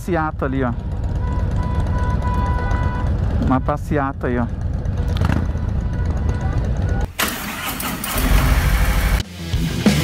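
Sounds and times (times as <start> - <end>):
motorcycle engines idling: 0.0 - 9.2
rough loud engine noise: 0.0 - 10.0
rock music: 9.2 - 10.0.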